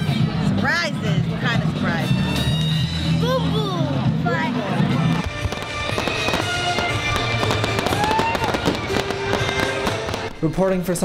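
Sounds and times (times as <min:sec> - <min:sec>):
music: 0:00.0 - 0:11.0
fireworks cracking and popping: 0:05.0 - 0:10.6.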